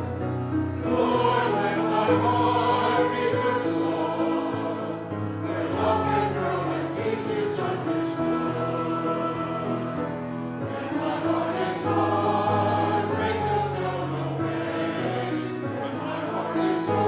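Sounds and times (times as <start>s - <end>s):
choir singing with accompaniment: 0.0s - 17.0s.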